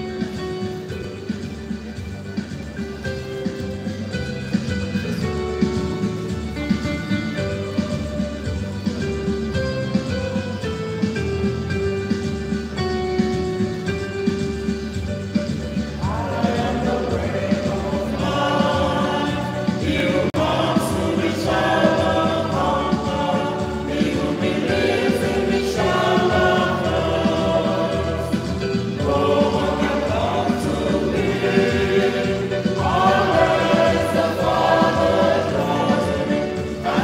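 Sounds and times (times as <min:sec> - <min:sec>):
steady accompaniment: 0:00.0 - 0:37.0
choir singing a hymn: 0:16.0 - 0:37.0.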